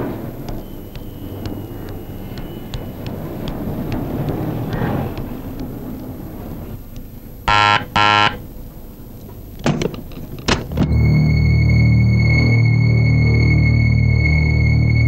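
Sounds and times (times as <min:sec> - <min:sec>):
low street rumble: 0:00.0 - 0:15.0
doorbell buzzer: 0:07.5 - 0:08.4.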